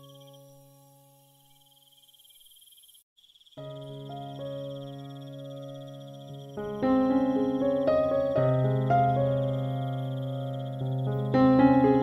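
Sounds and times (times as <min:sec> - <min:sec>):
faint high pulsing chirr: 0:00.0 - 0:07.8, 0:08.5 - 0:11.3.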